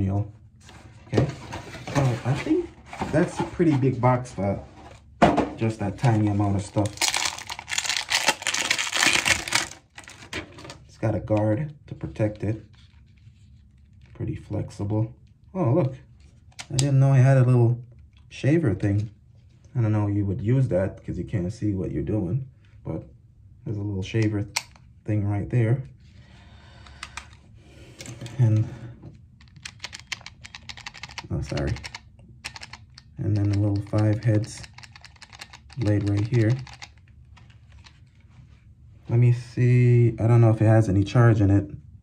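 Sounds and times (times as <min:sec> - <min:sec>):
plastic packaging crinkling: 0:06.0 - 0:10.3
handling noise of plastic shaver: 0:29.4 - 0:38.2.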